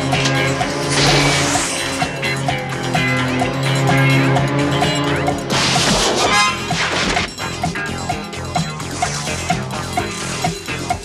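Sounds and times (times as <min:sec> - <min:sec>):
music with steady beat: 0:00.0 - 0:11.0.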